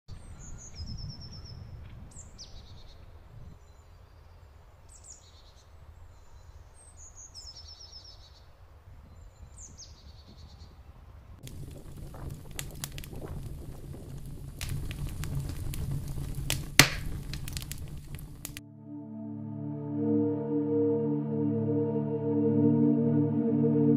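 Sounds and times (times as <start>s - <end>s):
crackling with sharp clicks: 11.4s - 18.6s
loud snap: 14.6s - 18.6s.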